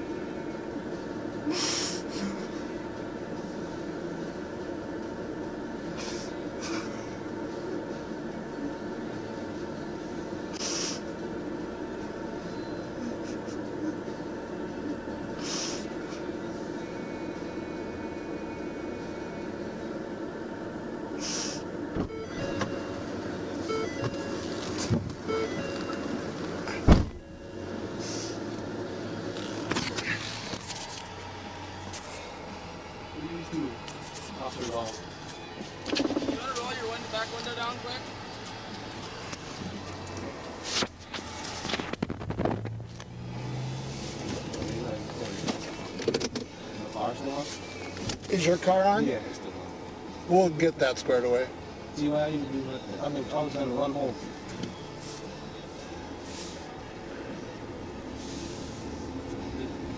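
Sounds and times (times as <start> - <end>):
steady hum inside car: 0.0 - 59.9
truck driving past: 8.7 - 59.9
short electronic beeps: 22.1 - 23.0, 23.6 - 24.5, 25.3 - 26.1
loud thump: 26.8 - 27.2
muffled voices: 29.4 - 42.0, 44.2 - 59.9.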